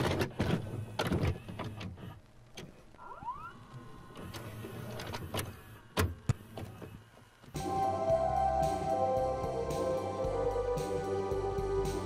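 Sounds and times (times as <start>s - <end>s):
mechanical clicks and clunks: 0.0s - 2.8s
rising whine: 7.5s - 12.0s.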